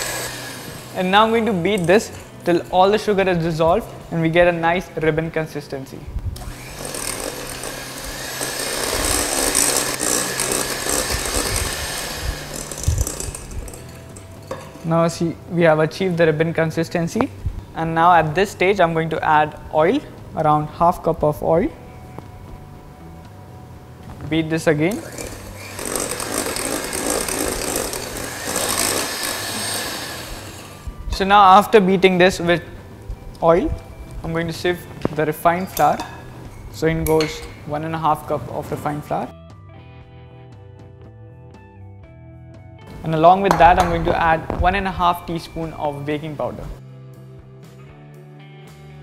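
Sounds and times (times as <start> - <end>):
electric hand mixer whisking: 0.0 - 1.0, 6.4 - 14.2, 24.9 - 30.9.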